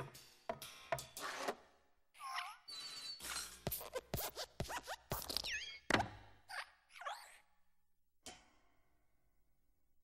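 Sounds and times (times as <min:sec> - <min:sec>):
springy arm squeaks: 0:02.4 - 0:04.0.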